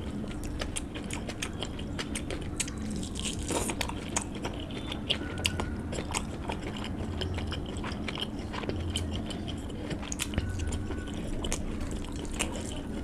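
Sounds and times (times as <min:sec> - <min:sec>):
mouth chewing food: 0:00.0 - 0:13.0.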